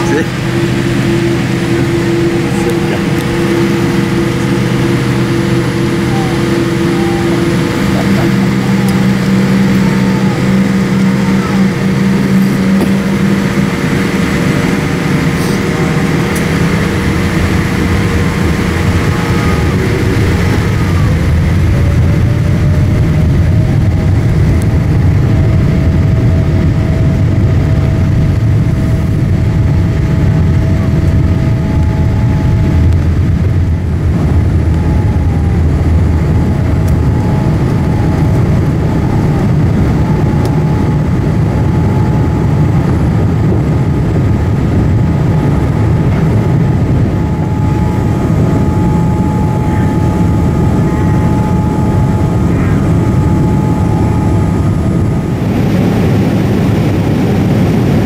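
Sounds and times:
aircraft cabin engine hum: 0.0s - 58.0s.

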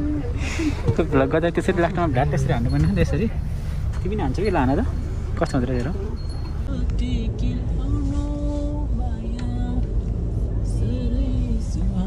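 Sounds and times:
road and engine rumble: 0.0s - 12.0s.

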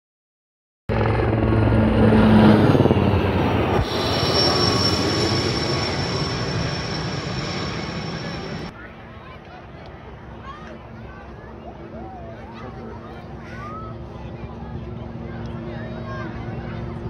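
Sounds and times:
helicopter rotor and engine: 0.9s - 9.4s, 10.0s - 17.0s
high steady whine: 2.6s - 8.7s.

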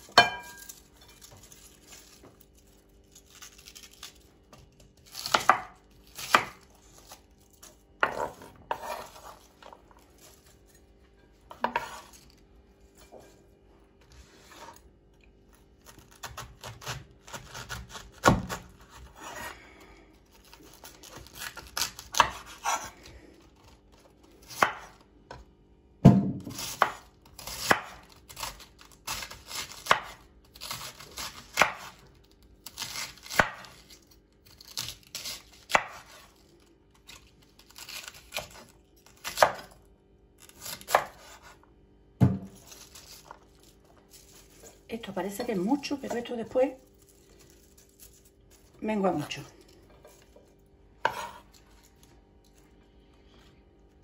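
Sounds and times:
knife slicing cabbage: 3.1s - 10.5s, 11.5s - 12.3s, 15.6s - 19.6s, 20.3s - 23.1s, 26.4s - 36.4s, 37.1s - 39.8s, 40.4s - 46.3s, 51.0s - 52.0s.

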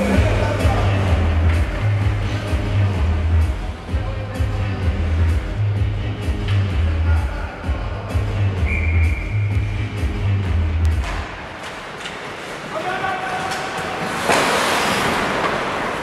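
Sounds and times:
music with pulsing bass beat: 0.0s - 11.0s.

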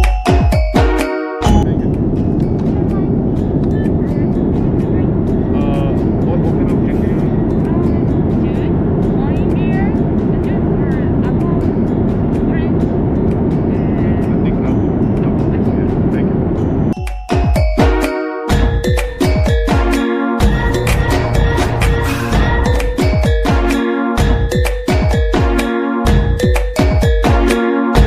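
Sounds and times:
quiet background music: 1.0s - 17.0s.

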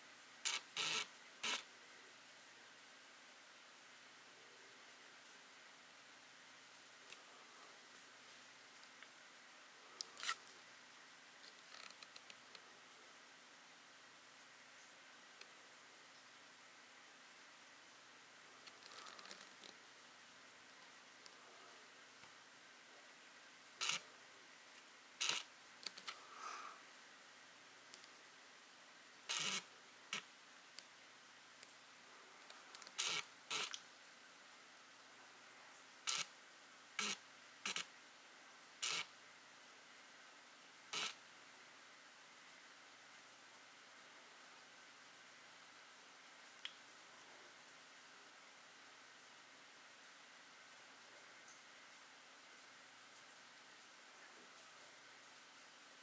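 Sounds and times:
faint background hum: 0.0s - 56.0s.

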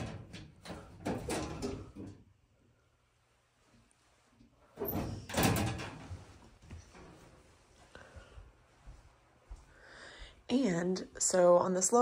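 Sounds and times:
metal door banging shut: 0.0s - 2.0s, 4.8s - 6.2s
metal door swinging and scraping: 0.0s - 2.1s, 4.8s - 6.4s.

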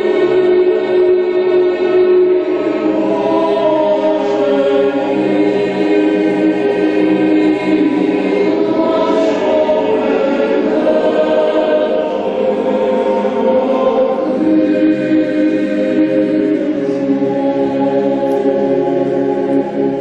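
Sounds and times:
boys' choir singing: 0.0s - 20.0s.

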